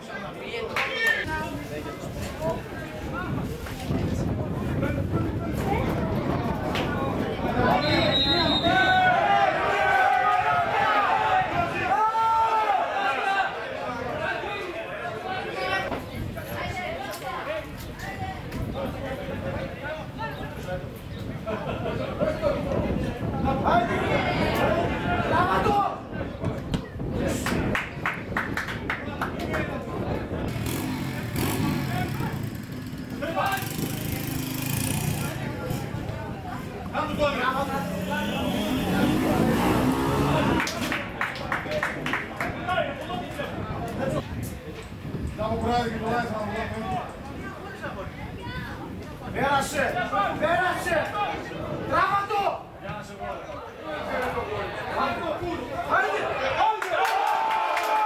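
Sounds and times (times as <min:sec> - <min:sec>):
crowd shouting: 0:07.6 - 0:15.9.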